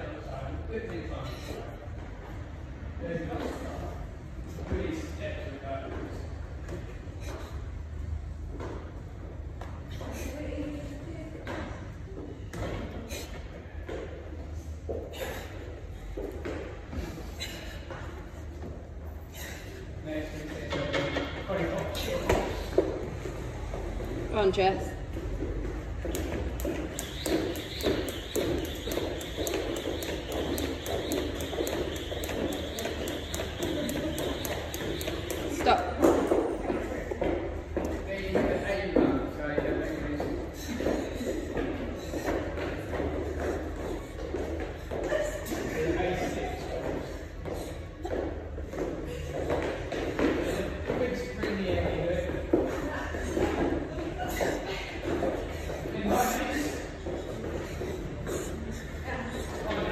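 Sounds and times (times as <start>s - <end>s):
jump rope hitting rubber floor: 25.3s - 58.0s.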